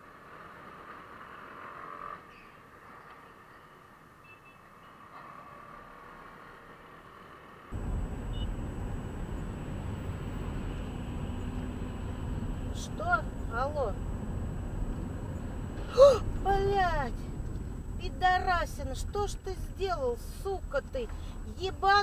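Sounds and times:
city traffic noise: 0.0 - 22.0
car road rumble: 7.7 - 22.0
faint high whine: 7.8 - 22.0.

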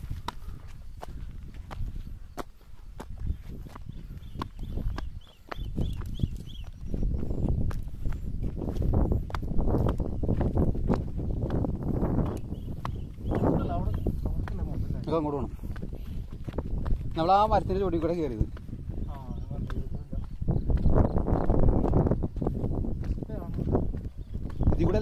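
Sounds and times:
footsteps on rock: 0.0 - 25.0
wind rumbling on microphone: 0.0 - 25.0.

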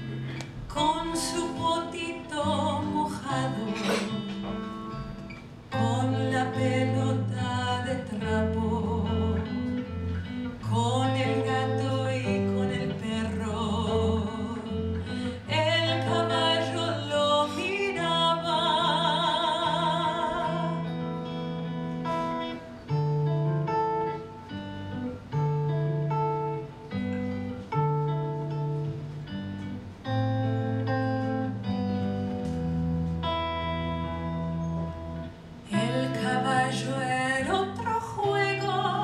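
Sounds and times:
woman singing: 0.7 - 4.9, 5.7 - 21.4, 35.6 - 39.0.

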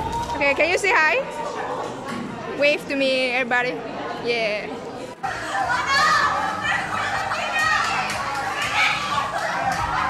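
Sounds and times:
young people shouting and squealing: 5.3 - 10.0.

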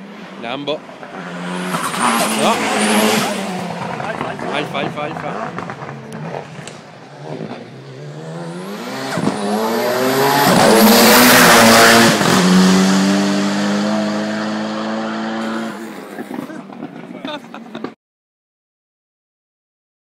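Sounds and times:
race car engine at full throttle: 0.0 - 18.0.

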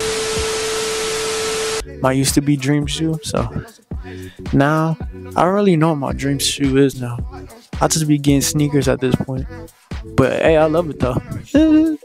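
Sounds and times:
loud static hiss: 0.0 - 1.8
steady mid-pitched tone: 0.0 - 1.8.

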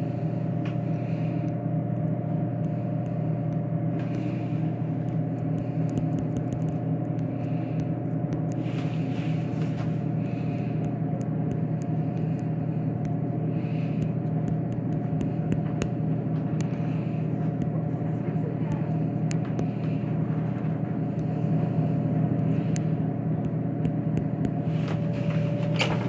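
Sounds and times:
vending machine hum: 0.0 - 26.0.

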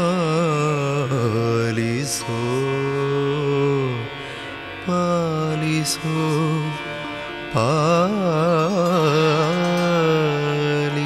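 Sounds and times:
man singing long held notes: 0.0 - 11.0
steady drone: 0.0 - 11.0.

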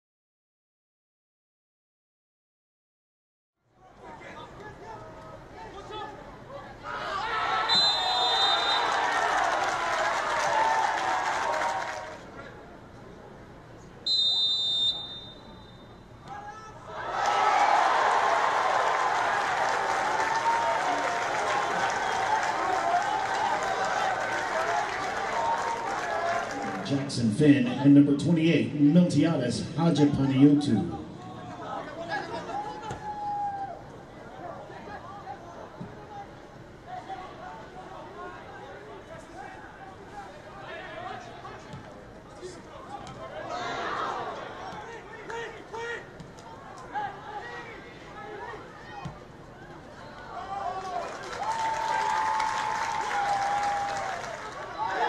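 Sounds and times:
crowd shouting and cheering: 5.7 - 12.3, 16.2 - 28.0, 29.6 - 41.8, 42.4 - 55.0
referee's whistle: 7.7 - 9.0, 14.0 - 16.1.

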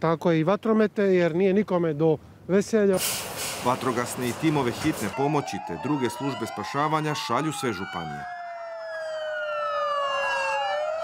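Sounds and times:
emergency sirens wailing: 3.6 - 11.0.

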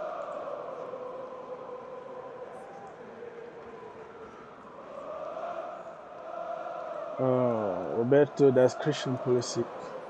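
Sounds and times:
faint chanting voices: 0.0 - 10.0.

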